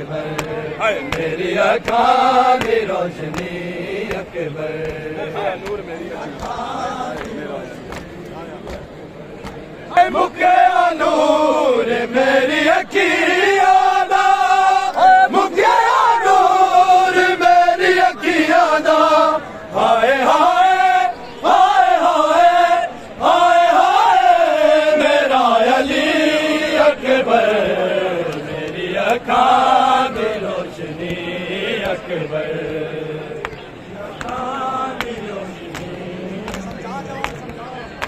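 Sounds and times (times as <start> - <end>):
crowd of men chanting: 0.0 - 38.0.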